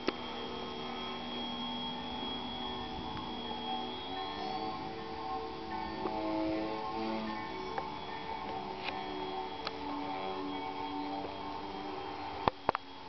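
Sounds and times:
sustained music chords: 0:00.0 - 0:13.0.

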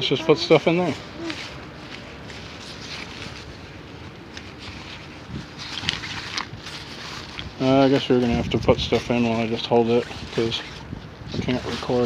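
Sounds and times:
cloth bag rustling: 0:00.0 - 0:12.0
crinkly rustle: 0:00.0 - 0:12.0
outdoor background noise: 0:00.0 - 0:12.0.

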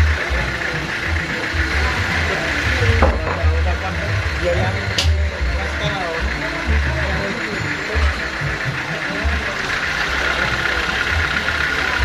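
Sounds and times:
indistinct voices: 0:00.0 - 0:12.0
sawmill engine rumbling: 0:00.0 - 0:12.0.

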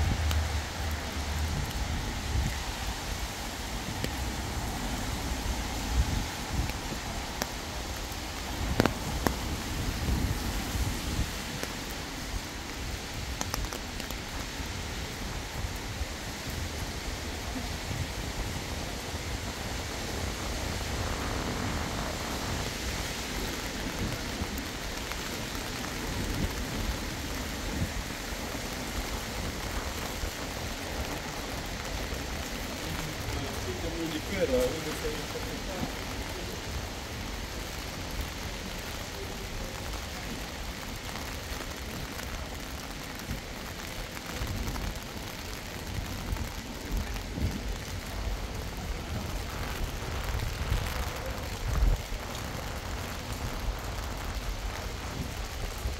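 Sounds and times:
rain on stone paving: 0:00.0 - 0:55.9.

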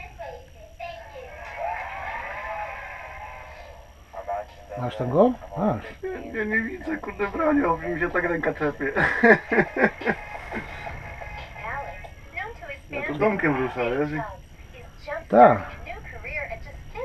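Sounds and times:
low steady hum: 0:00.0 - 0:17.0
men talking: 0:04.1 - 0:10.8, 0:12.9 - 0:14.2, 0:15.3 - 0:15.8.

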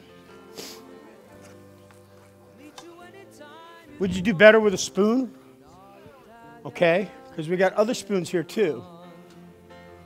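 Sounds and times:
faint recorded music: 0:00.0 - 0:10.0.

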